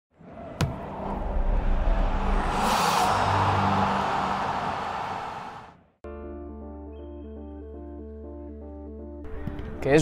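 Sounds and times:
whoosh: 0:01.1 - 0:05.8.

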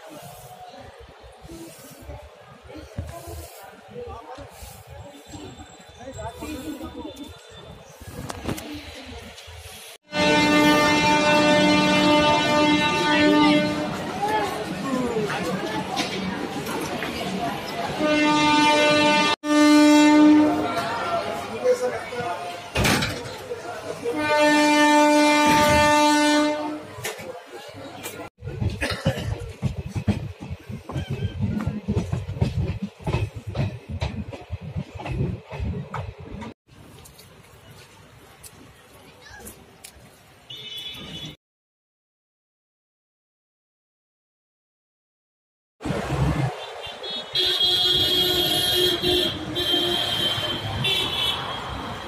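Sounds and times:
road traffic: 0:00.0 - 0:30.8, 0:32.1 - 0:41.4, 0:45.8 - 0:52.0
train coach noise: 0:00.0 - 0:41.4, 0:45.8 - 0:52.0
train horn blast: 0:10.1 - 0:14.1, 0:18.0 - 0:20.8, 0:24.1 - 0:27.1, 0:47.0 - 0:51.7.

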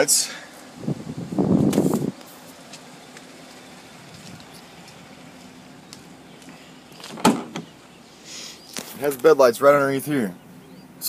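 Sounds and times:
sharp thump: 0:07.1 - 0:07.7.

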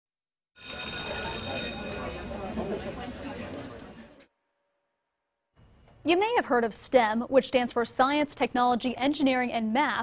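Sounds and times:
bell ringing: 0:00.6 - 0:02.4
murmur of voices chattering: 0:00.7 - 0:04.3.

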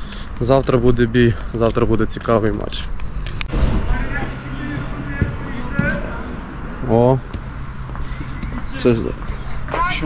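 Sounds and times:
steady low hum: 0:03.4 - 0:09.7
distant shouting voices: 0:03.7 - 0:10.0.

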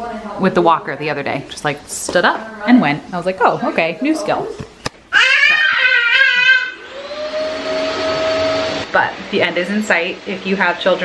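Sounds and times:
high-pitched squeal: 0:05.2 - 0:08.9
small motor whirring: 0:06.3 - 0:08.9.

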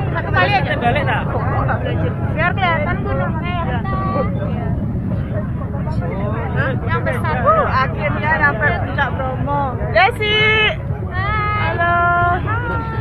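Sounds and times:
crowd chatter: 0:00.0 - 0:13.0
steady low rumble: 0:00.0 - 0:13.0.

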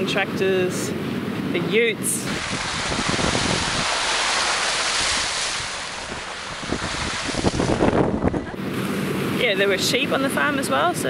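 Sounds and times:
road and tyre noise: 0:00.0 - 0:11.0
wind rushing over microphone: 0:02.0 - 0:09.6.

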